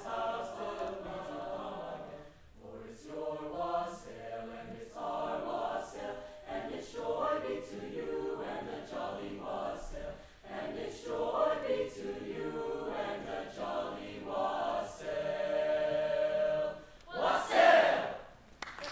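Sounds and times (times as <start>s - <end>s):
chamber choir singing: 0.0s - 18.4s.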